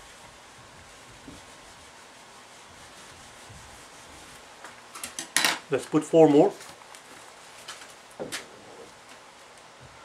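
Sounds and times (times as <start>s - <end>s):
eraser scrubbing whiteboard: 0.0s - 4.7s.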